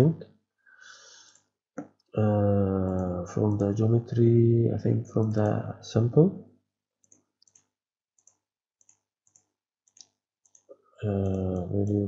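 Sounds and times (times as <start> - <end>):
computer mouse clicks: 2.8 - 3.8, 7.0 - 12.0.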